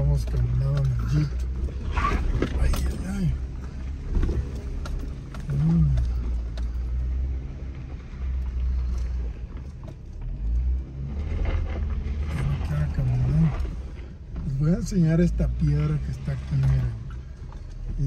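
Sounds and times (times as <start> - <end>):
car engine running at low speed: 0.0 - 18.0.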